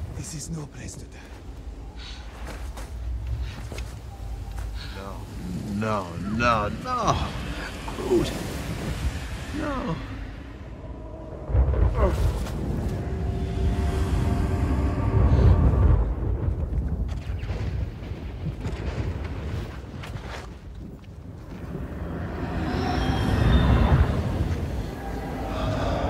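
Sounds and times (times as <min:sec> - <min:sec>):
sombre orchestral score: 0:00.0 - 0:17.1, 0:21.4 - 0:26.0
deep low rumble: 0:01.5 - 0:20.2.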